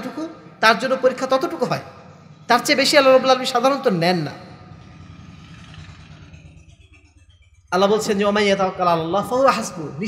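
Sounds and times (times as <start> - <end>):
voice echo in large hall: 0.0 - 10.0.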